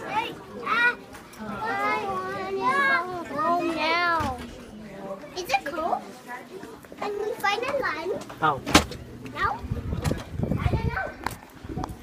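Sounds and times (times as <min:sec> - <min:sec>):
young children chattering: 0:00.0 - 0:12.0.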